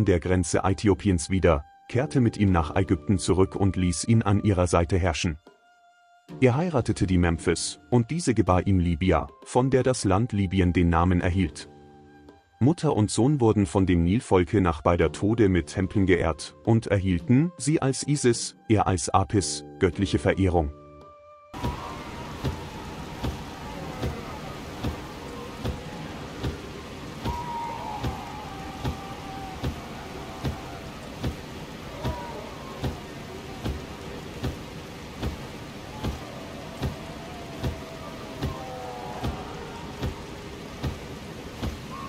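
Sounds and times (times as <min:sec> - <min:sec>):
soft thumps: 0:21.6 - 0:41.9
rain-like hiss: 0:21.6 - 0:42.0.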